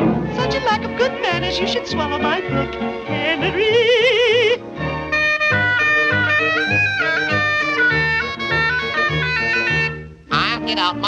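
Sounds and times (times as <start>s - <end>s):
reedy wind melody: 5.0s - 10.9s.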